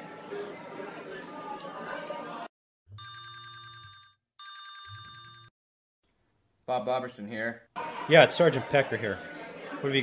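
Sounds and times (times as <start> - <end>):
telephone ringing electronic trill: 3.0 - 5.5.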